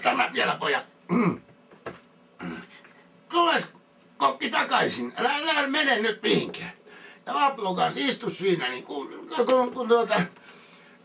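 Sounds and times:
man clearing his throat: 0:01.1 - 0:01.5.

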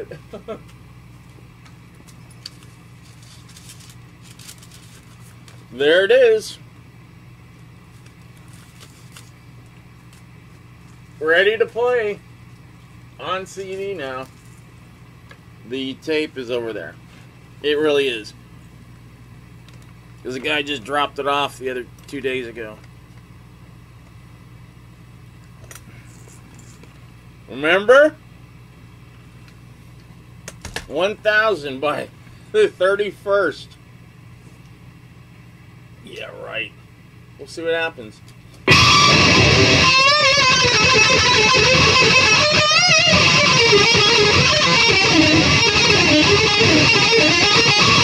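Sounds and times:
low electrical hum: 0:00.0 - 0:48.0
paper sleeve rustling: 0:02.6 - 0:05.6, 0:08.0 - 0:09.4.

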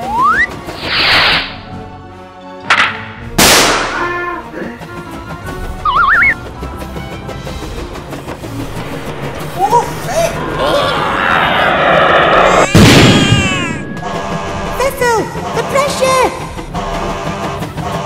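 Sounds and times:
warbling whistle: 0:00.0 - 0:01.0, 0:05.8 - 0:06.4
background music: 0:00.0 - 0:18.0
rocket whooshing: 0:00.8 - 0:01.7, 0:09.8 - 0:14.0.

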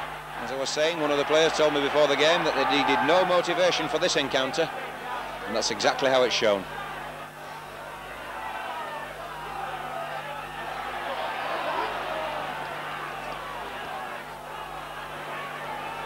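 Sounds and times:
crowd shouts and chatter: 0:00.0 - 0:16.0.

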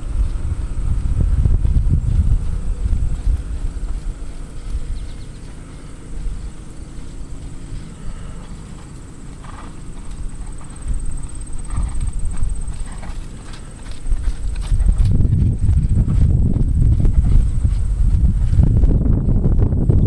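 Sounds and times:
horse hoofbeats on sand: 0:00.0 - 0:20.0
low rumble: 0:00.0 - 0:20.0.

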